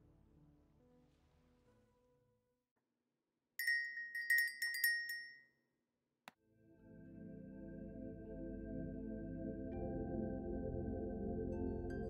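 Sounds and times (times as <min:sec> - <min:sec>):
metal wind chimes tinkling: 0:03.6 - 0:05.4.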